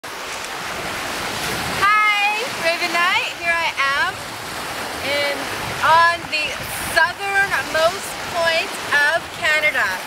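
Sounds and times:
waves washing on shore: 0.0 - 10.0
wind on microphone: 0.7 - 10.0.

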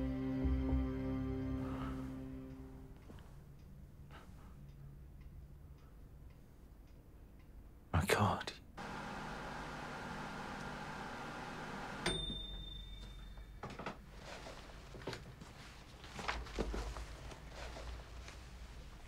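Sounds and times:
microwave click: 8.8 - 12.8
microwave oven humming: 8.8 - 13.4.

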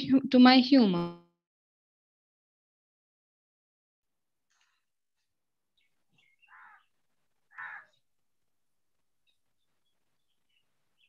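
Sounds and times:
faint bird chirps: 5.7 - 8.0, 9.2 - 11.0
bird calling: 5.8 - 6.9, 7.5 - 8.0.

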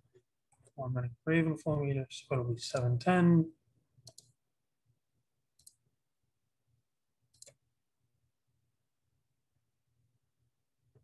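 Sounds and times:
computer mouse clicks: 4.0 - 4.4, 5.6 - 5.8, 7.3 - 7.6.

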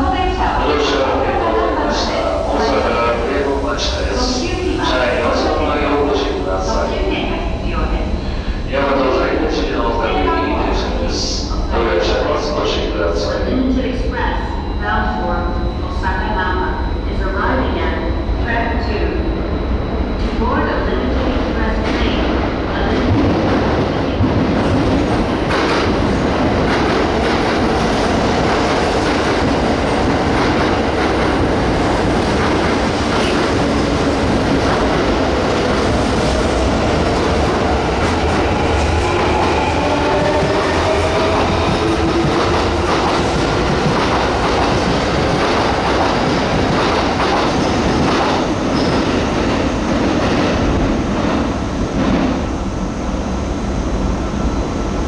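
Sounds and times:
pitch-gliding train whine: 0.0 - 21.8, 22.4 - 55.0
train wheels clattering on rails: 21.8 - 51.4.

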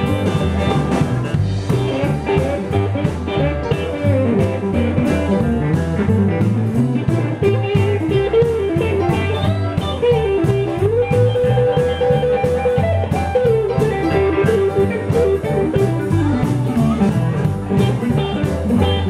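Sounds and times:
electric guitar lead with bent notes: 0.0 - 19.0
live blues-rock band playing: 0.0 - 19.0.

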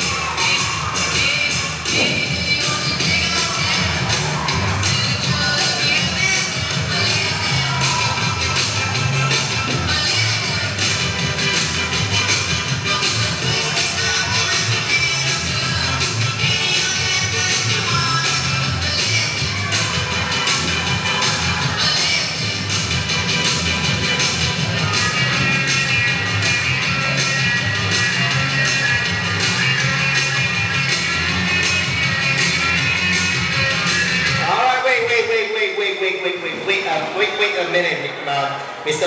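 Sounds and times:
upbeat music with bass: 0.0 - 38.1.

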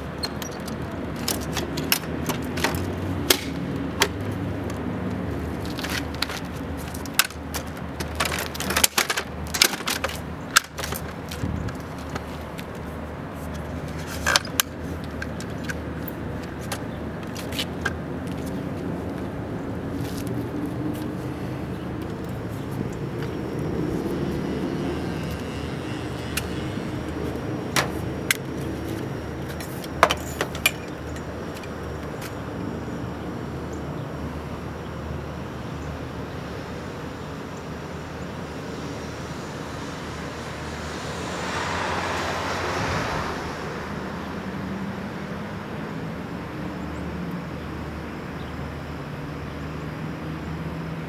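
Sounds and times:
electric lift motor running: 0.1 - 36.4.

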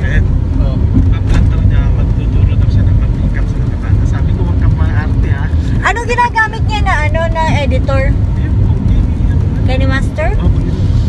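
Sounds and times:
people talking: 0.0 - 10.8
car interior rumble: 0.0 - 11.0.

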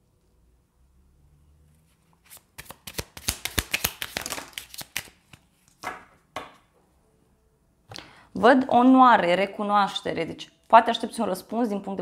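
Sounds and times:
cards being shuffled: 1.9 - 6.1.

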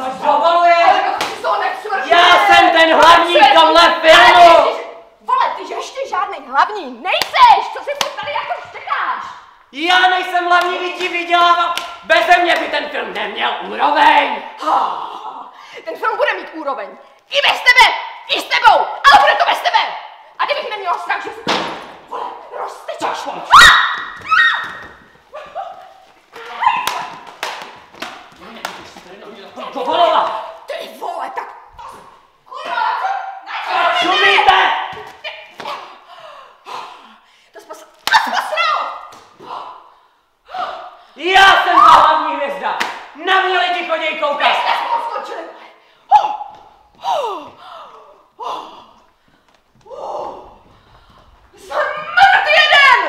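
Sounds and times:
person yelling: 0.0 - 5.5, 31.8 - 35.0, 40.5 - 42.5, 46.1 - 47.5, 51.6 - 53.0
people grunting: 14.4 - 15.6, 38.0 - 39.9, 40.5 - 41.9, 46.1 - 49.1, 49.8 - 50.7
loud thud: 21.4 - 22.1.

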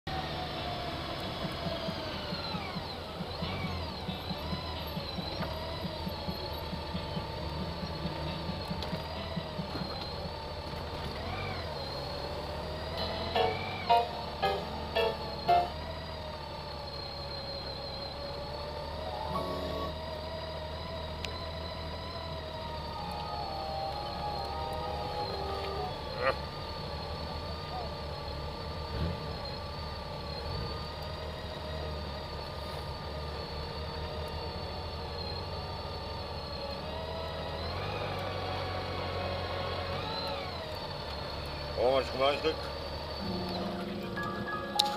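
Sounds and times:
motorcycle engines humming: 0.1 - 44.9.

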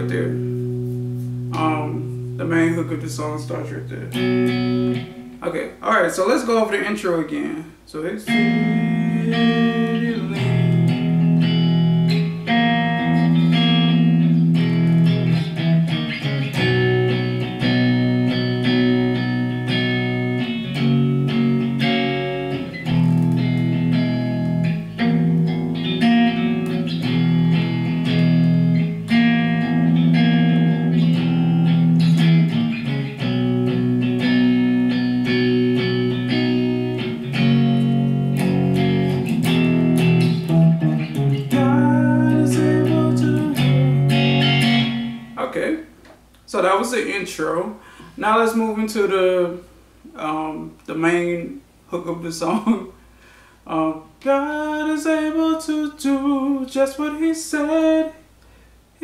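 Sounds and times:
fingerpicked electric guitar chords: 0.0 - 5.6, 8.2 - 45.5.

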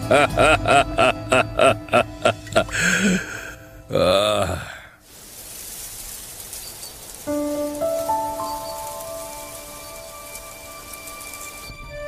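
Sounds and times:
gentle background music: 0.0 - 4.5, 5.6 - 12.0
soft hiss of ambient noise: 0.0 - 12.0.

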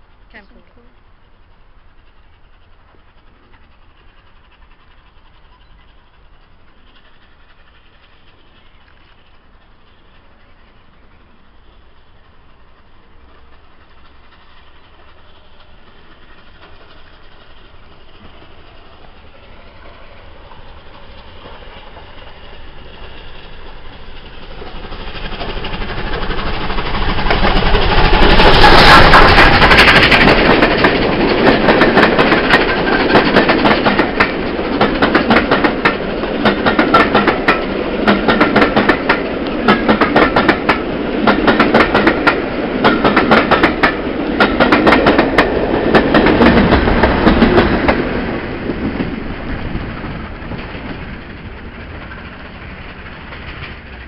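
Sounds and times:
steam locomotive passing: 0.0 - 54.0
wheels clickety-clack over rail joints: 0.0 - 54.0.

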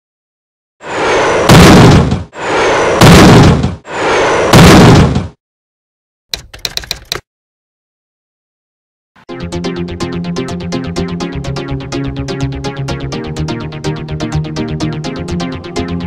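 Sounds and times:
swells building into heavy impacts: 0.8 - 5.2
rattle of rapid sharp clicks: 6.3 - 7.2.

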